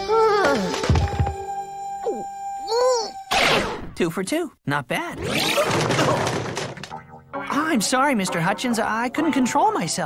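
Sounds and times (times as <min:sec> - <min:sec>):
cartoon crash of breaking furniture: 0:05.2 - 0:06.9.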